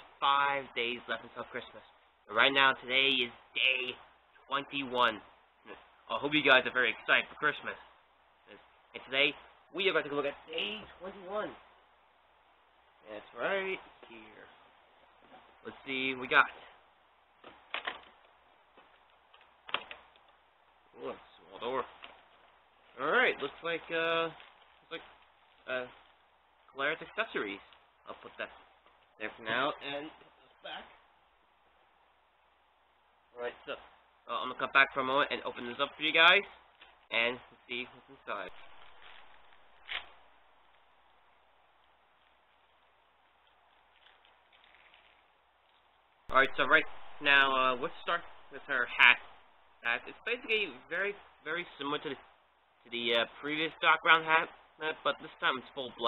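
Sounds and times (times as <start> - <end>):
faint room hiss: 0.0 - 56.0
cardboard crackle: 17.4 - 20.4, 21.8 - 26.2, 38.4 - 41.0, 42.1 - 45.9.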